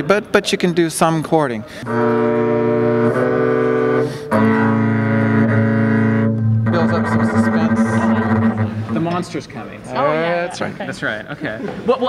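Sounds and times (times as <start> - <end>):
double bass bowed chords: 1.8 - 10.2.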